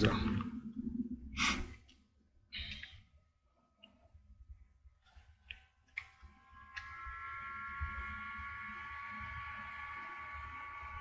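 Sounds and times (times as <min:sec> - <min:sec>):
person breathing into microphone: 0:01.3 - 0:01.8.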